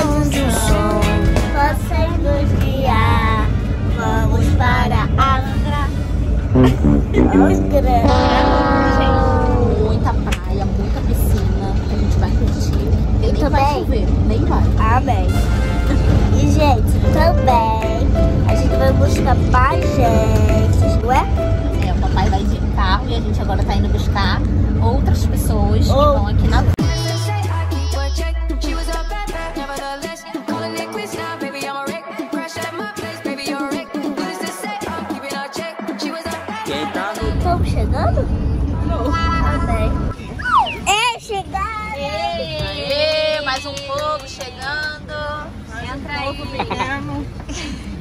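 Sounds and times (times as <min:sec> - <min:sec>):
vehicle engine and tyres rumbling: 0:01.6 - 0:15.3, 0:15.9 - 0:26.8, 0:37.2 - 0:48.0
person speaking: 0:06.6 - 0:10.0
woman and girl singing: 0:26.8 - 0:40.0.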